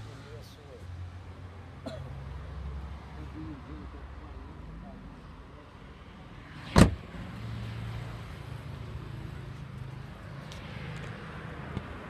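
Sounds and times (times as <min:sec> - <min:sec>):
car door slamming: 0:06.7 - 0:07.0.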